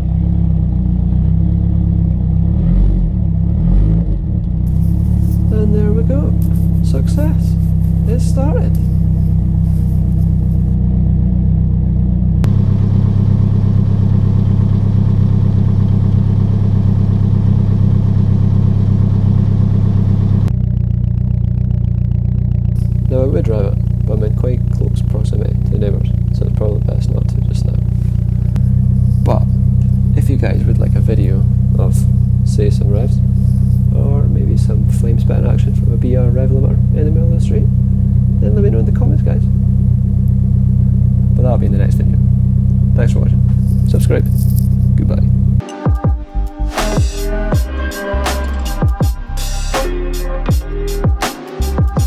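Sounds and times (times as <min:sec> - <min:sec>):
car engine idling: 0:00.0 - 0:52.0
low pulsing exhaust note: 0:00.0 - 0:52.0.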